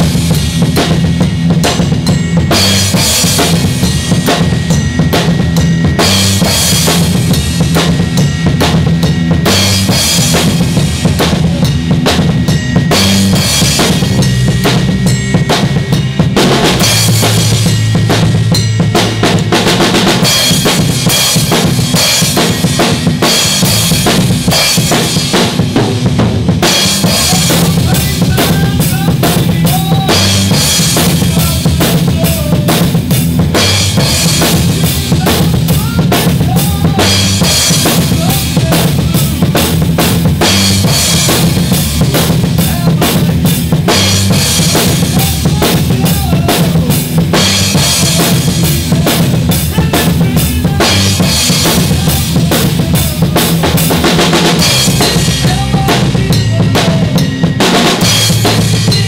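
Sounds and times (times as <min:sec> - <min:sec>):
drum kit playing rock beat: 0:00.0 - 0:59.0
low amplified bass notes: 0:00.0 - 0:59.0.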